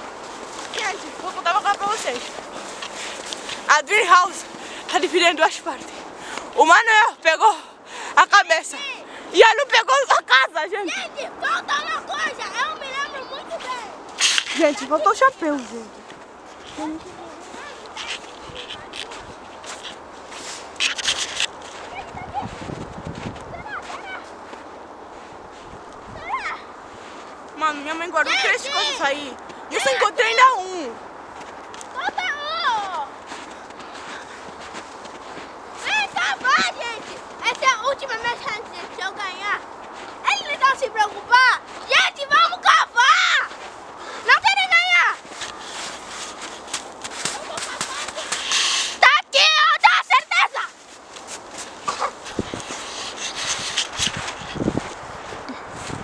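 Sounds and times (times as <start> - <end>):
loud crackling crunching: 0.0 - 4.8, 45.2 - 49.0
girl calling out: 23.5 - 24.3, 26.2 - 26.7, 28.2 - 30.9, 32.0 - 33.1, 41.3 - 43.5, 49.0 - 50.7
distant children calling: 23.5 - 24.6, 31.9 - 50.7
hands digging in snow: 32.0 - 39.6, 41.9 - 56.0.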